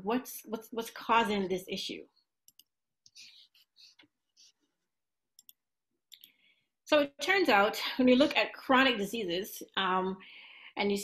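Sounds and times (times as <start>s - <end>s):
woman speaking: 0.0s - 2.1s, 6.9s - 11.0s.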